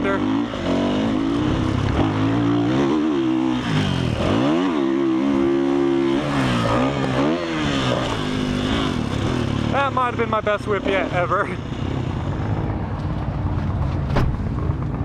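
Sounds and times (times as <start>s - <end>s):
dirt bike engine revving: 0.0s - 12.6s.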